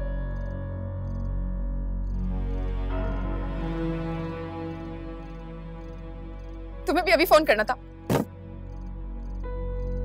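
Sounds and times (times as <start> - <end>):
background music sustained tones: 0.0 - 10.0.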